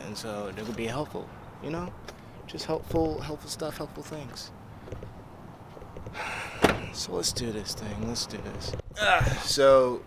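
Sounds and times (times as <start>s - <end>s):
truck door slamming: 6.5s - 7.0s.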